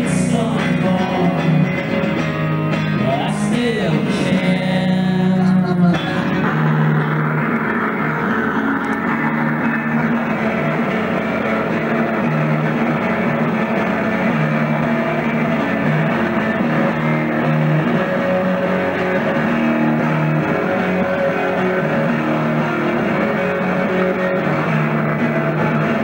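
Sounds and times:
bass guitar: 0.0s - 26.0s
electric guitar: 0.0s - 26.0s.

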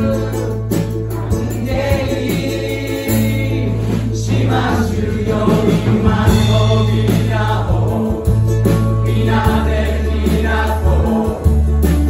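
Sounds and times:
drums: 0.0s - 12.0s
electric bass: 0.0s - 12.0s
group of voices singing: 0.0s - 12.0s
keyboard: 0.0s - 12.0s.

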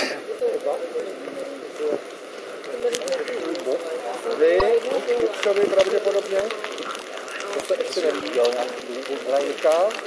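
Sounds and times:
campfire crackling: 0.0s - 10.0s
people talking: 0.0s - 10.0s.

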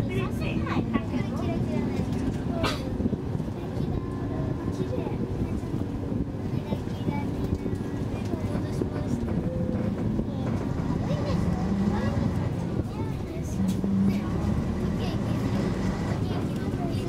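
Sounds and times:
bus engine rumble: 0.0s - 17.0s
faint voices: 0.0s - 17.0s.

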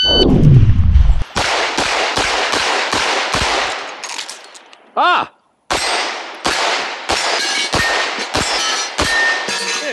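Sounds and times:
pistol shots: 1.3s - 4.0s, 5.7s - 9.5s
ring of hit steel target: 7.4s - 9.9s.

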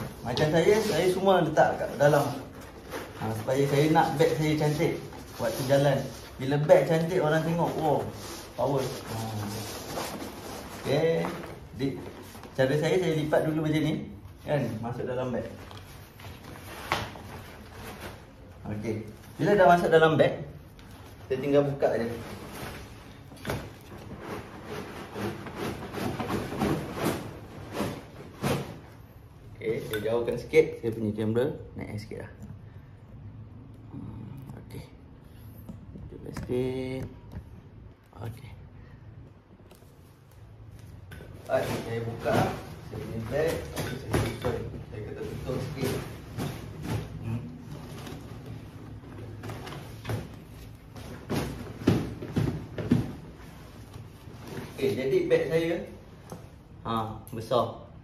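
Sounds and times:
backpack rustling and scraping: 0.0s - 12.6s, 21.5s - 28.8s, 41.3s - 55.1s
knocks and thumps on backpack: 49.3s - 53.4s.

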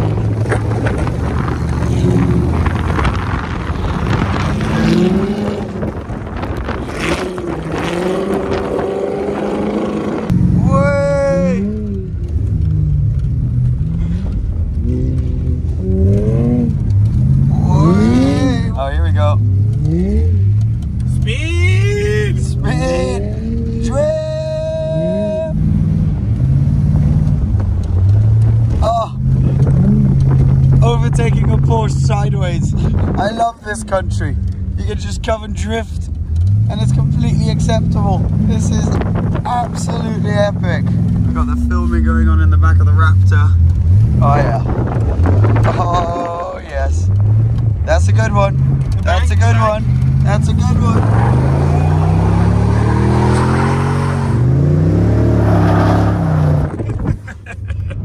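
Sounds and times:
car engine: 0.0s - 58.0s
road noise inside car: 0.0s - 58.0s
voices: 10.6s - 12.3s, 17.4s - 20.4s, 21.0s - 25.6s, 30.7s - 47.2s, 47.8s - 53.8s.

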